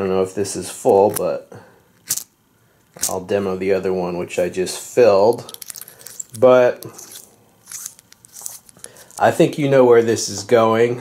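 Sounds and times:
small metal clicks: 2.0s - 3.2s, 5.3s - 9.3s
faint scraping of threaded cap: 5.4s - 9.4s.

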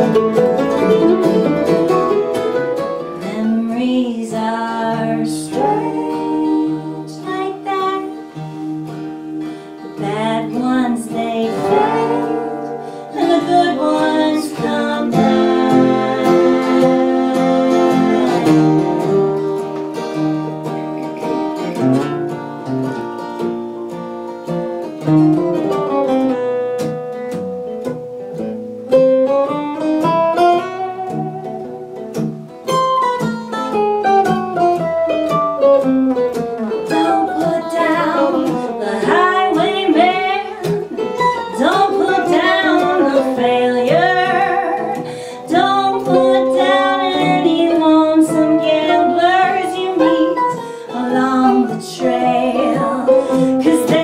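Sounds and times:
acoustic guitars and mandolin: 0.0s - 54.0s
sung harmony: 0.0s - 54.0s.

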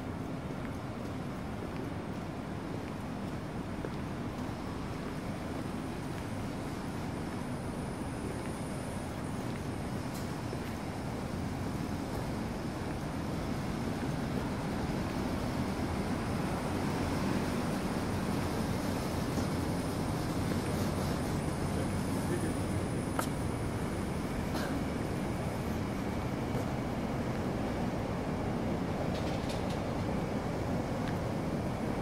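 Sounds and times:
city traffic rumble: 0.0s - 32.0s.

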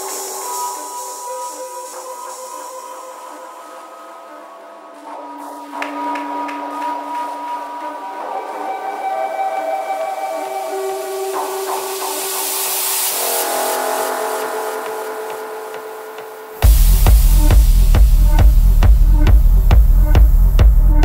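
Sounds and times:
held synth chords: 0.0s - 21.0s.

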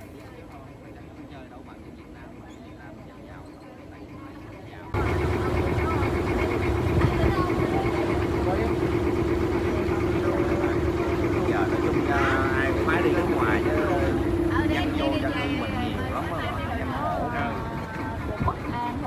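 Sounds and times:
boat engine humming: 0.0s - 19.0s
passengers' voices: 0.0s - 19.0s.

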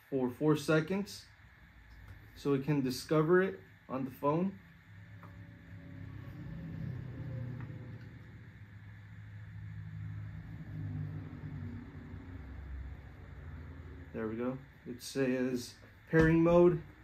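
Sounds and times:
low background rumble: 1.2s - 17.0s.

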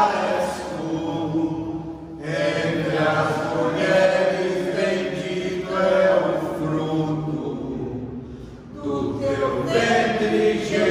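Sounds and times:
group reciting prayer: 0.0s - 10.9s.

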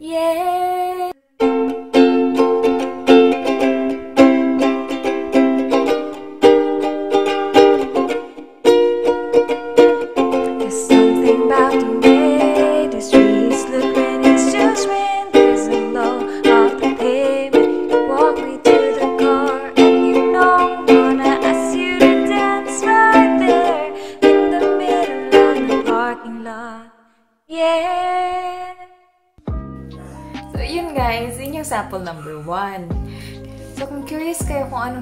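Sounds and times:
woman singing: 0.0s - 1.2s, 10.4s - 29.0s, 30.4s - 33.1s, 33.8s - 35.0s
strummed ukulele: 1.4s - 26.6s.

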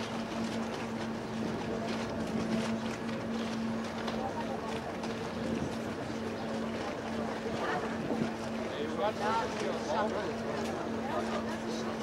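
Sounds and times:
ferry machinery hum: 0.0s - 12.0s.

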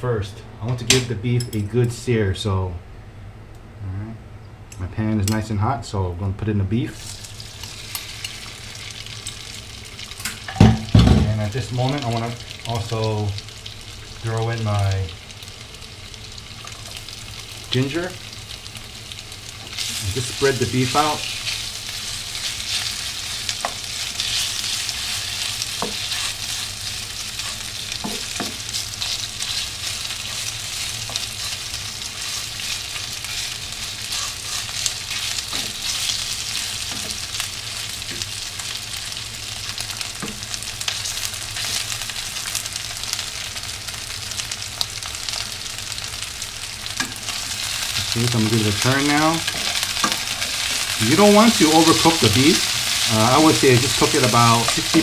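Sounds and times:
steady low hum: 0.0s - 55.0s
meat sizzling in hot oil: 6.9s - 55.0s.

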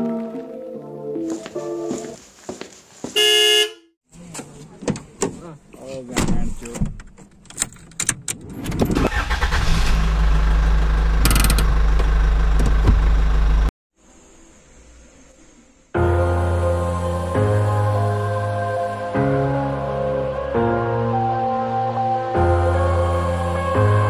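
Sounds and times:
horn toot: 3.2s - 3.9s
car engine starting and idling: 7.6s - 13.7s.

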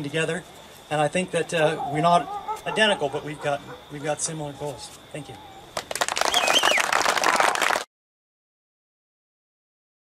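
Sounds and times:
audience applause: 5.8s - 7.9s
high cheer: 5.8s - 7.9s.

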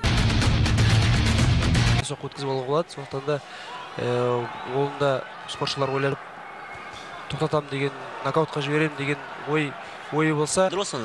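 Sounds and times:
arena crowd noise: 0.7s - 11.0s
man commentating: 7.4s - 11.0s.

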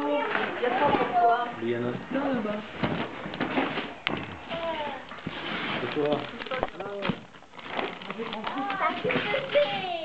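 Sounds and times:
wrapping paper rustling and tearing: 3.5s - 10.0s
child's voice: 4.5s - 5.1s, 8.5s - 10.0s.

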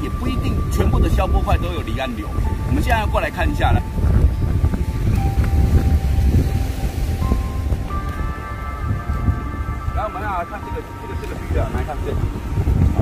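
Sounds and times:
music of long held notes: 0.0s - 13.0s
wind buffeting microphone: 0.0s - 13.0s.

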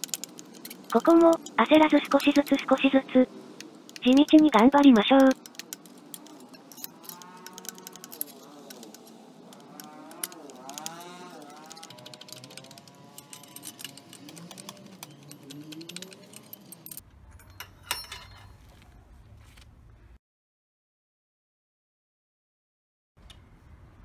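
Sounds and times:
faint metal clicks: 3.6s - 18.5s.

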